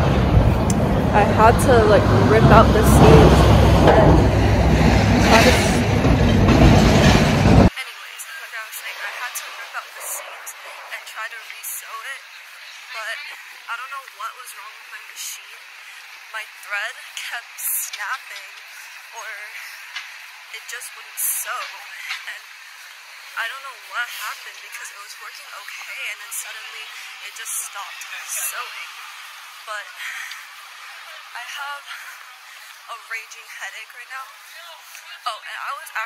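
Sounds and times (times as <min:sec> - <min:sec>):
wind buffeting microphone: 0:00.0 - 0:07.7
street sound: 0:00.0 - 0:07.8
faint voices: 0:00.6 - 0:06.8, 0:07.6 - 0:36.0
woman speaking: 0:00.7 - 0:06.0, 0:07.7 - 0:12.3, 0:12.9 - 0:15.7, 0:16.3 - 0:19.8, 0:20.6 - 0:22.5, 0:23.4 - 0:29.0, 0:29.6 - 0:30.4, 0:31.0 - 0:36.0.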